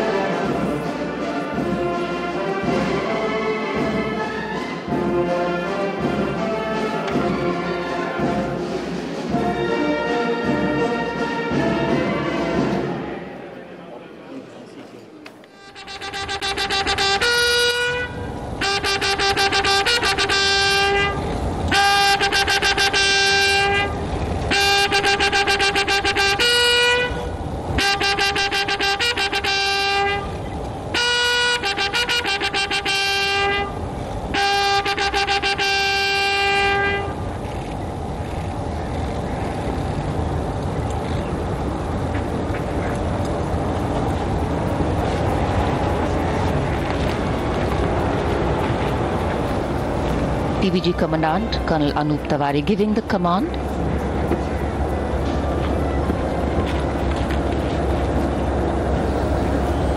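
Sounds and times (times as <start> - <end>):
open-air background noise: 0.0 - 59.9
military bugles playing: 9.3 - 13.0, 15.5 - 37.2.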